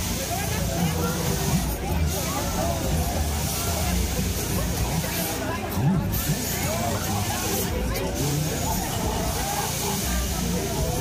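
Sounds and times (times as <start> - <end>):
fairground ride rumble and hiss: 0.0 - 11.0
voices: 0.0 - 11.0.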